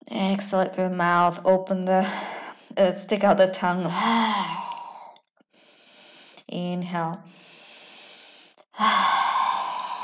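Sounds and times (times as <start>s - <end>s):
faint breathing: 3.9s - 6.5s, 7.3s - 10.0s.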